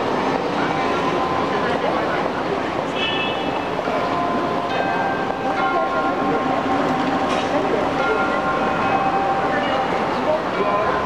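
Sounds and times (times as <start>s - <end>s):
city street noise: 0.0s - 11.0s.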